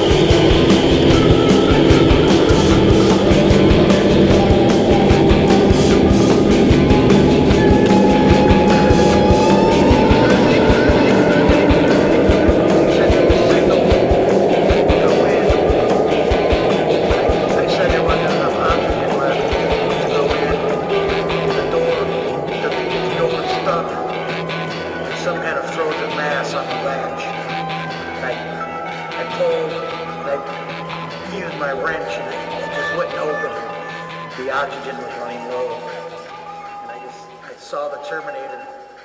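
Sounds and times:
drums: 0.0s - 25.4s
distorted guitar: 0.0s - 37.4s
droning tone rising in pitch: 0.0s - 37.4s.

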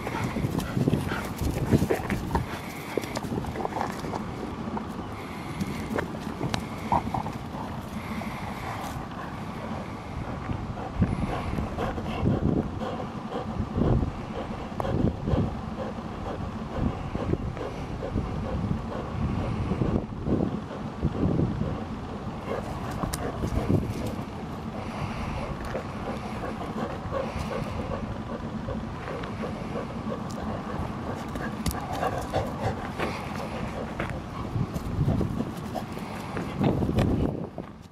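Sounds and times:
dogs scuffling on grass: 0.0s - 4.3s.

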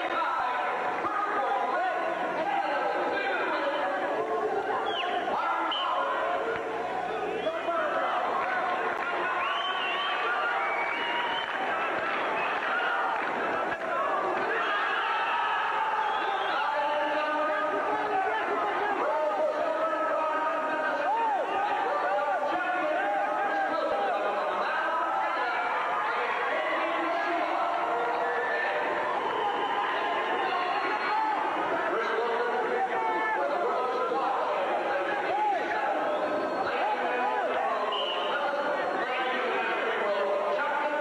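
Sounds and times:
spectators talking and shouting: 0.0s - 41.0s.

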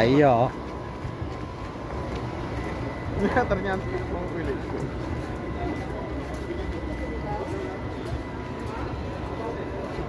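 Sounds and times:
indistinct chatter of people: 0.0s - 10.0s
low outdoor rumble: 0.4s - 10.0s.

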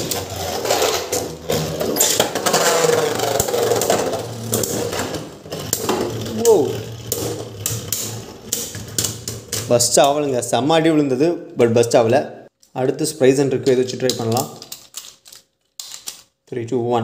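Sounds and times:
spinning tops whirring and clicking: 0.0s - 10.2s.

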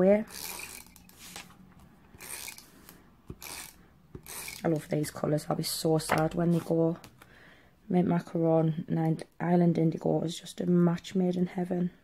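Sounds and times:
tape runner drawn along paper: 0.3s - 4.6s.

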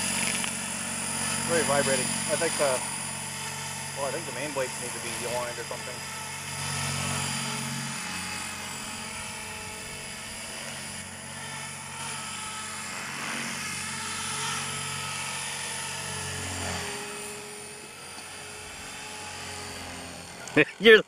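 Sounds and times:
high-pitched motor whine: 0.0s - 21.0s
rotor hum: 0.0s - 21.0s.

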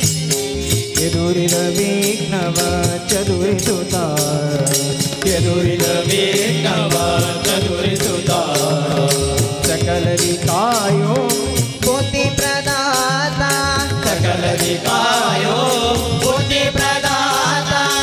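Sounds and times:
barrel drum beat: 0.0s - 18.0s
voices singing devotional song: 1.0s - 18.0s.

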